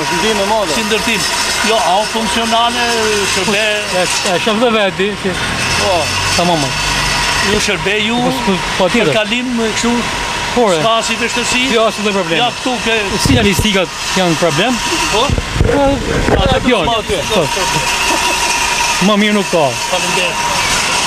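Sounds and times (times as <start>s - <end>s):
car engine running: 0.0s - 21.0s
men talking: 0.0s - 21.0s.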